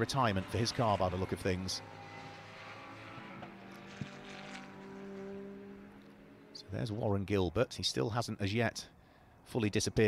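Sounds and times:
distant race car engine: 0.0 - 7.9.

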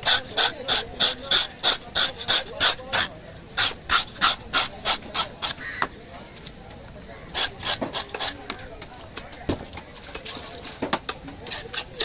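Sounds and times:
knife scraping fish skin: 0.0 - 5.6, 7.3 - 8.5, 11.4 - 12.0.

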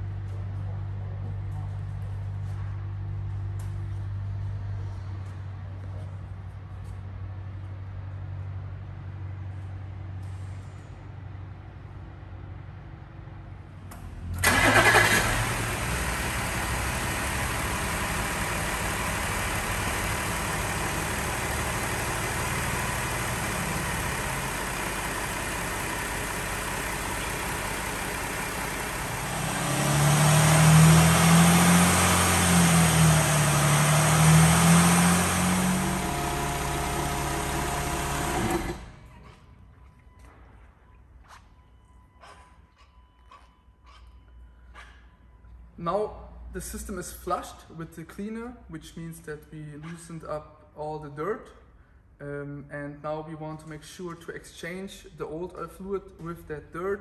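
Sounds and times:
car engine starting: 13.9 - 39.3
car engine running: 15.3 - 39.0.

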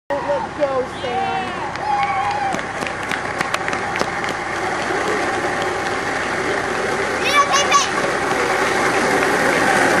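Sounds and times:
voices: 0.1 - 10.0.

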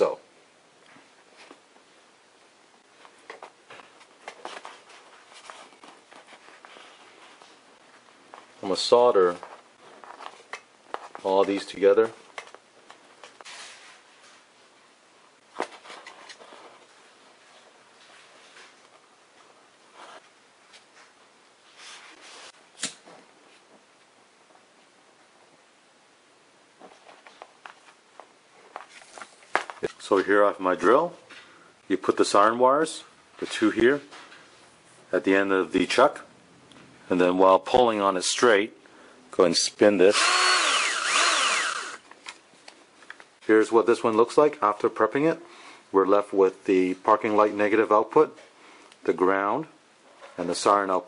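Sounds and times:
hands handling wires and tools: 26.8 - 30.4, 41.7 - 43.4.

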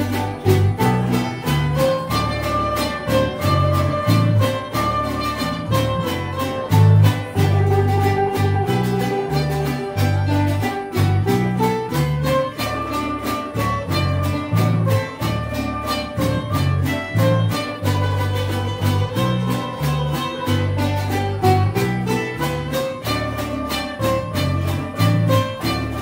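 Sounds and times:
acoustic string band playing: 0.0 - 26.0
double bass walking low notes: 0.0 - 26.0
guitars strumming: 0.0 - 26.0
sustained melody line: 0.0 - 26.0.

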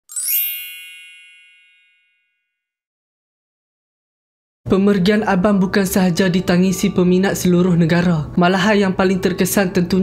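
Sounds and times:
bright chime sting: 0.1 - 2.3.

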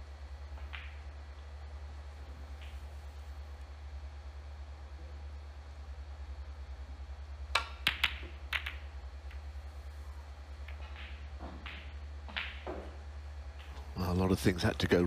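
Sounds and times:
low hum: 0.0 - 15.0
snooker balls clicking: 0.5 - 1.5, 2.5 - 3.0, 7.5 - 9.6, 10.5 - 14.0.

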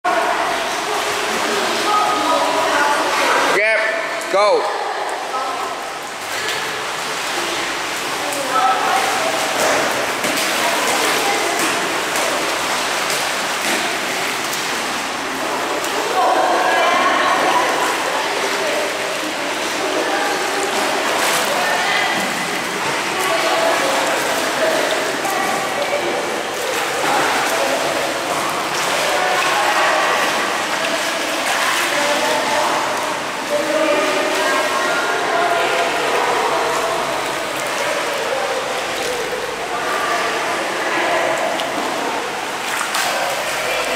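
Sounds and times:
swimmer splashing water: 0.0 - 43.9.

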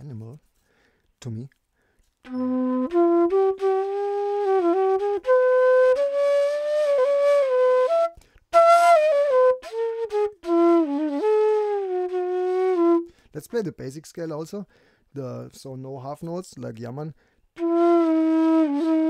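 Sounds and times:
bamboo flute playing held notes: 2.2 - 13.1, 17.6 - 19.0.

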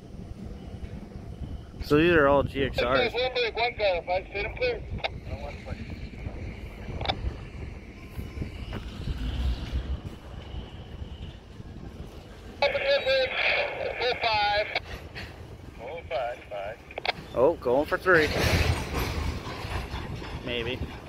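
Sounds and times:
wind rumble on microphone: 0.0 - 21.0
person talking: 12.6 - 14.8.

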